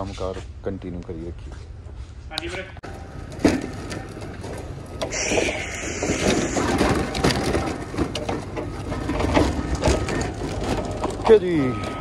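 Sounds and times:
metal cart rattling over concrete: 0:02.9 - 0:05.1, 0:06.5 - 0:12.0.

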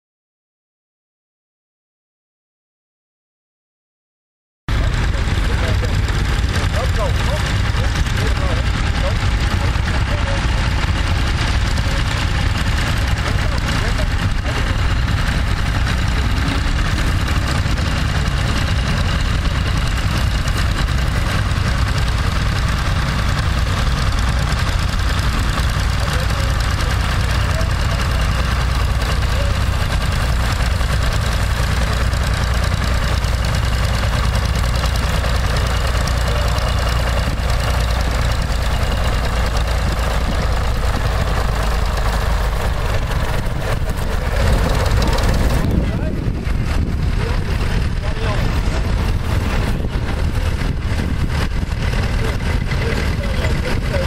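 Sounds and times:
tractor engine running under load: 0:04.7 - 0:54.0.

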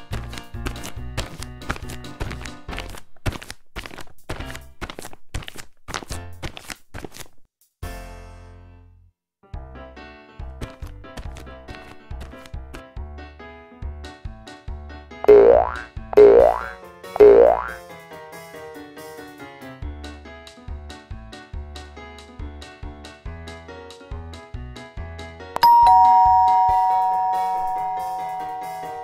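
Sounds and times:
bouncy plucked background music: 0:15.3 - 0:17.8
cartoon boing sound effect: 0:15.3 - 0:17.8
electronic doorbell chime: 0:25.6 - 0:29.0.

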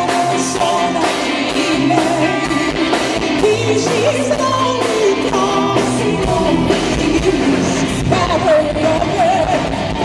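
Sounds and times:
live rock band: 0:00.0 - 0:10.0
woman singing with vibrato: 0:00.0 - 0:10.0.

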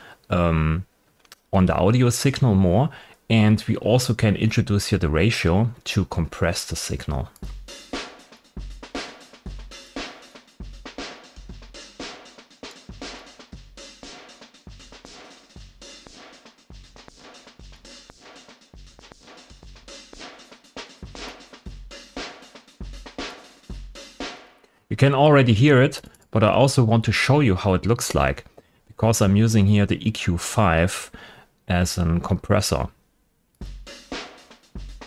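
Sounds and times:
drum kit loop: 0:03.8 - 0:25.9, 0:33.6 - 0:35.0.

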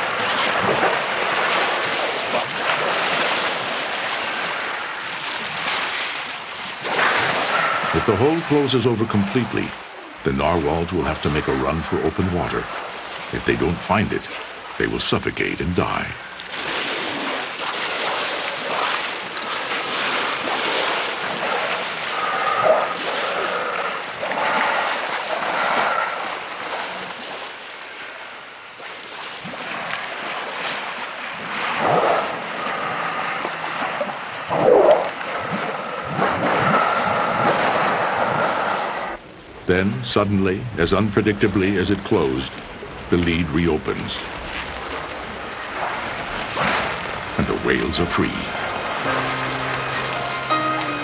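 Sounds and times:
water splashing: 0:00.0 - 0:39.2, 0:40.8 - 0:51.0
whale breaths: 0:07.2 - 0:08.0, 0:21.9 - 0:26.9, 0:31.6 - 0:34.2, 0:36.1 - 0:39.2.

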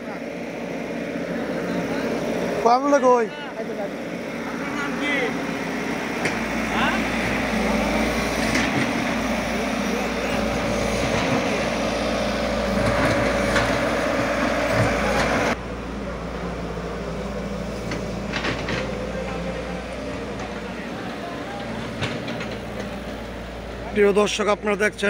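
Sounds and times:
excavator diesel engine running: 0:00.0 - 0:25.0.

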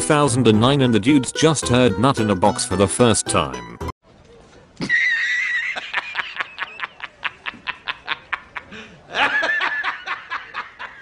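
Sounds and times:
man laughing hard: 0:04.8 - 0:11.0.

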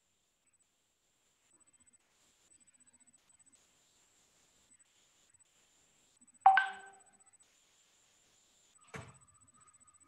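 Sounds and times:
electronic chime: 0:06.5 - 0:07.0.

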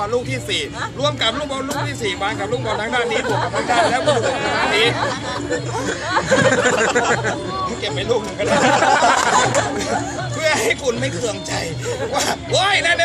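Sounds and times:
man talking: 0:00.0 - 0:05.1
background music with bass beat: 0:00.0 - 0:13.0.

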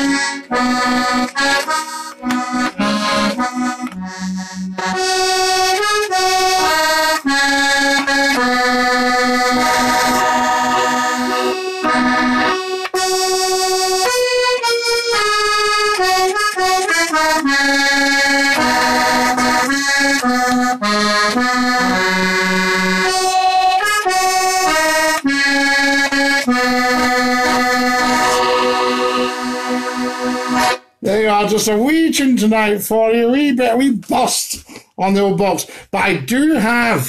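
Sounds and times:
button accordion playing tune: 0:00.0 - 0:32.7.

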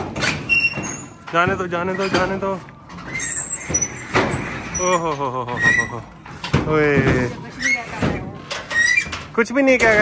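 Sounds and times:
high metallic squeaks: 0:00.2 - 0:06.1, 0:07.4 - 0:09.3.

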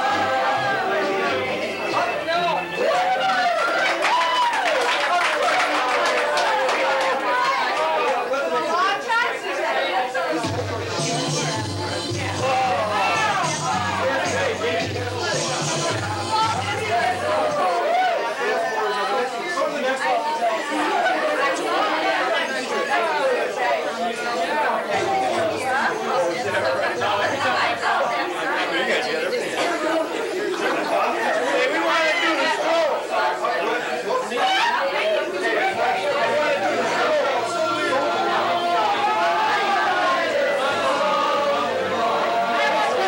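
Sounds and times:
crowd chatter: 0:00.0 - 0:43.0.

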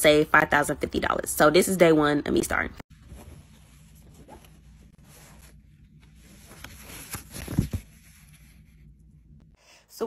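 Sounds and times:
fabric rustling: 0:02.9 - 0:08.9.

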